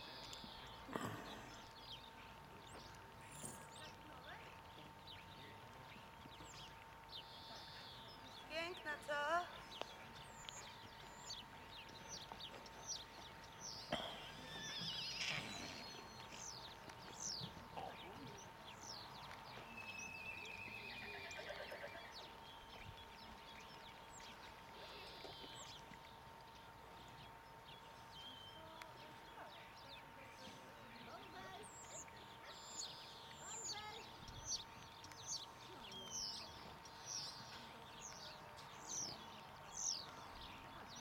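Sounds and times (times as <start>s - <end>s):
faint birdsong chirps: 0.0s - 41.0s
horse neighing: 20.8s - 22.2s.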